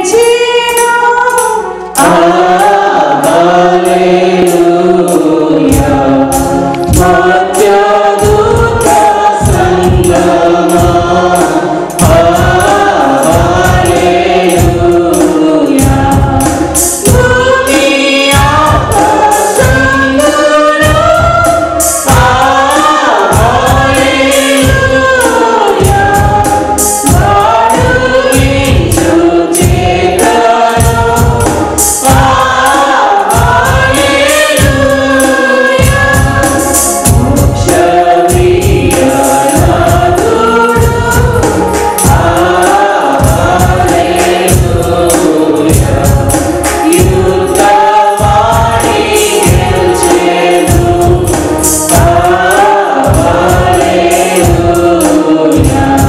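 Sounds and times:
mixed choir singing a hymn: 0:00.0 - 0:56.0
steady percussion beat: 0:00.0 - 0:56.0.

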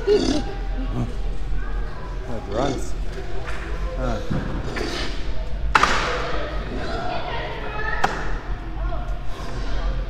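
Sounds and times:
voices echoing in a hall: 0:00.0 - 0:10.0.

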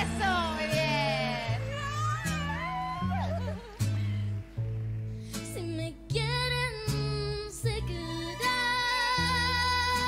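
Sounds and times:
girl singing: 0:00.0 - 0:02.4, 0:05.5 - 0:10.0
band accompaniment with bass: 0:00.0 - 0:10.0.

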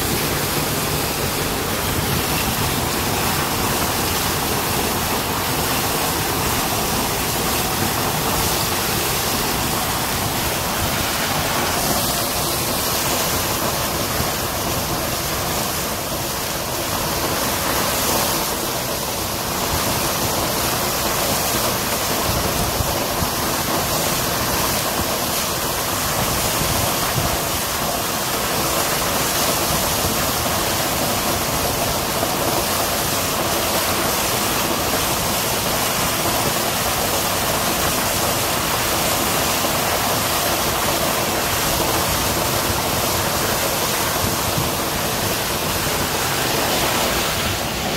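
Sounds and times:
water gushing from pipe: 0:00.0 - 0:47.9.

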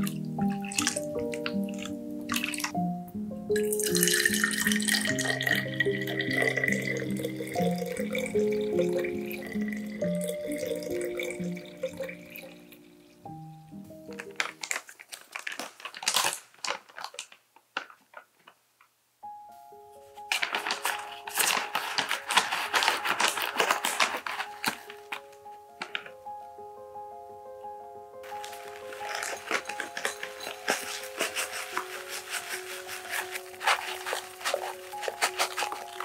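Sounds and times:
milk pouring into a glass bottle: 0:00.0 - 0:02.8, 0:03.5 - 0:13.0, 0:28.3 - 0:36.0
milk splashing into a glass bowl: 0:00.0 - 0:02.8, 0:03.6 - 0:12.6
plastic bag crinkling: 0:00.0 - 0:02.8, 0:03.6 - 0:12.6, 0:13.9 - 0:18.9, 0:20.0 - 0:26.2, 0:28.2 - 0:36.0
background music: 0:00.0 - 0:14.8, 0:19.2 - 0:36.0.

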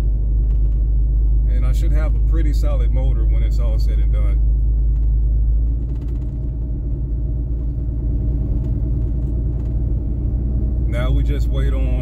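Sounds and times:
engine and tyre rumble: 0:00.0 - 0:12.0.

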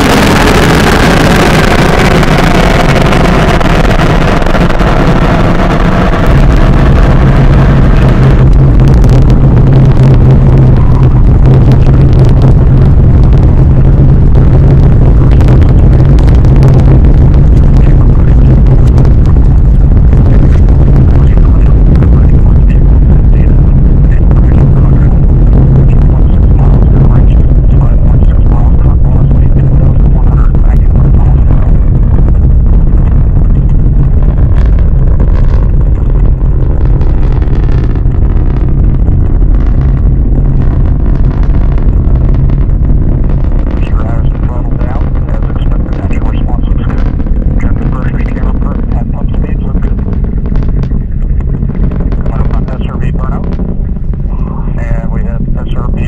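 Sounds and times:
rocket engine rumble with crackling: 0:00.0 - 0:56.0.

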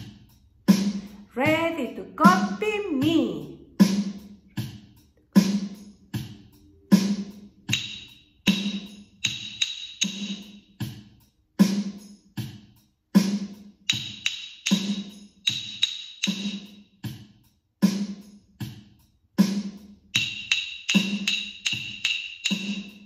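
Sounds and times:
steady drum beat: 0:00.0 - 0:23.0
rhythm sticks clicking: 0:04.2 - 0:11.0, 0:13.8 - 0:16.8, 0:20.1 - 0:23.0.

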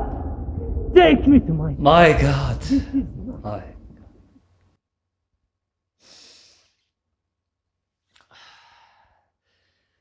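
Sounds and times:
man sighing: 0:02.4 - 0:04.2.

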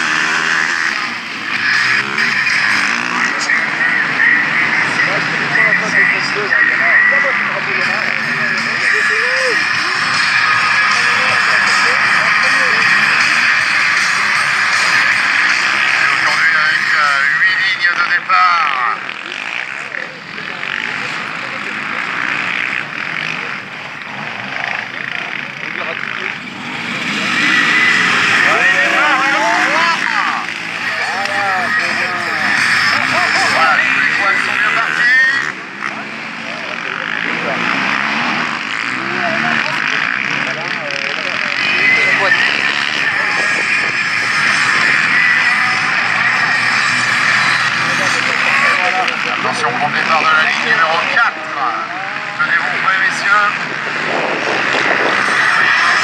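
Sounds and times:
quad engines revving: 0:00.0 - 0:56.0.

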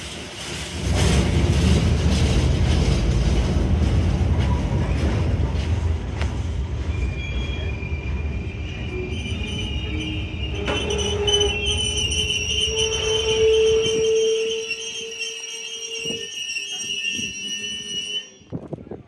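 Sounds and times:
freight train wagons rumbling: 0:00.0 - 0:19.0
high wheel squeal: 0:06.8 - 0:18.6.

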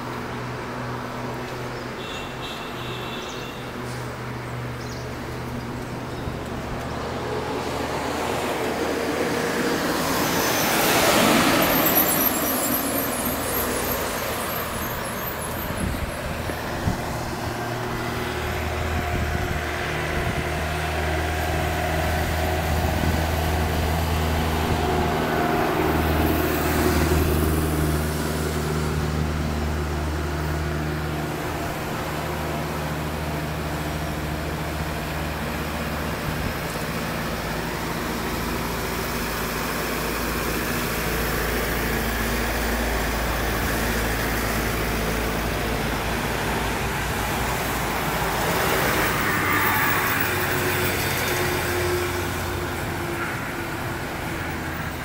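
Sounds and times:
bus passing: 0:00.0 - 0:55.0
road traffic noise: 0:00.0 - 0:55.0
vehicle engine low drone: 0:00.0 - 0:55.0.

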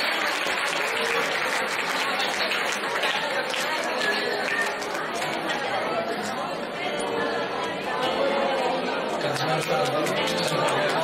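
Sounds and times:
audience chatter: 0:00.0 - 0:11.0.

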